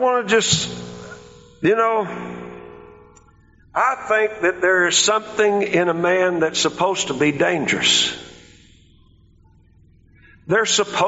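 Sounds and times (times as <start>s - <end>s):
man speaking: 0.0s - 0.8s, 1.6s - 2.2s, 3.8s - 8.3s, 10.5s - 11.0s
faint low room hum: 0.4s - 11.0s.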